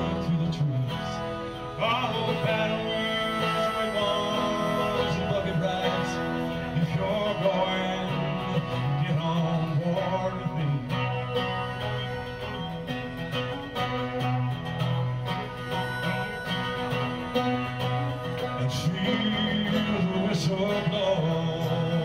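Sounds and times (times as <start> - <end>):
acoustic guitar strumming: 0.0 - 22.0
country band playing live: 0.0 - 22.0.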